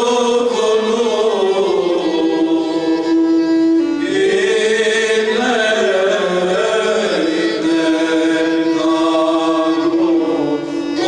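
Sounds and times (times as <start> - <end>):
men singing a chant: 4.0 - 11.0.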